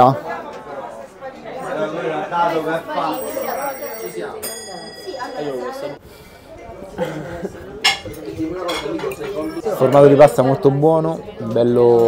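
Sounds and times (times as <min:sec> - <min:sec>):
diners chatting: 0:00.0 - 0:12.0
tableware clinking: 0:03.1 - 0:06.0, 0:07.8 - 0:10.0.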